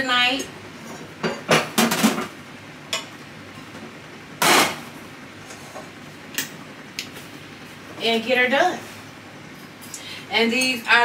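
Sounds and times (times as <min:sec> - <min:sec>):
dishes and utensils clattering: 0:00.9 - 0:02.3.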